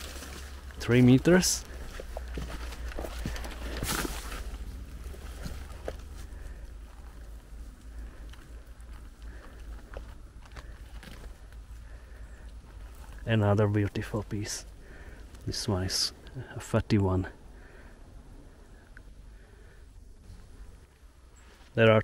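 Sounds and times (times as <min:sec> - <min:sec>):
footsteps on dry needles: 0:00.0 - 0:12.1
twigs cracking and snapping: 0:00.0 - 0:15.6
low steady rumble: 0:00.0 - 0:21.6.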